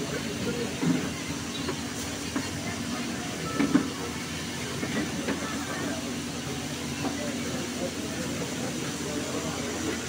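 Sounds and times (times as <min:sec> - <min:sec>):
voices murmuring: 0:00.0 - 0:10.0.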